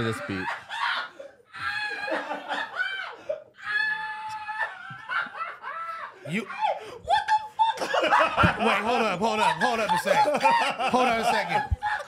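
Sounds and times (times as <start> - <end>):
men laughing: 0.0 - 3.5, 4.5 - 12.0.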